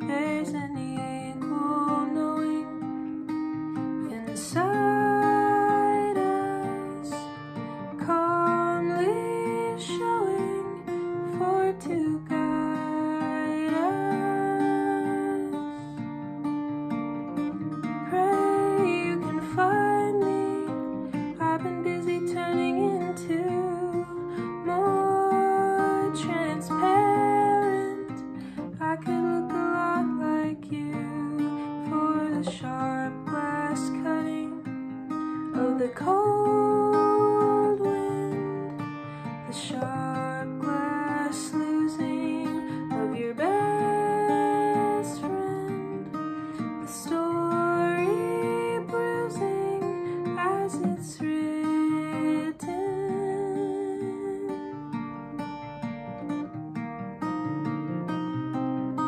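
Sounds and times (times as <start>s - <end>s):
woman singing: 0.0s - 56.6s
acoustic guitar: 0.0s - 59.0s.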